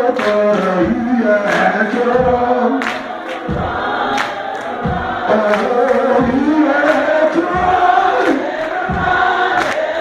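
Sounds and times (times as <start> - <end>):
gospel choir singing: 0.0 - 10.0.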